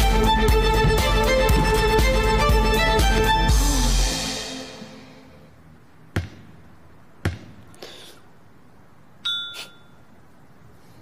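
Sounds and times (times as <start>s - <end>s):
music: 0.0s - 5.6s
basketball bouncing on wooden floor: 0.5s - 2.0s, 6.1s - 6.6s, 7.2s - 7.6s.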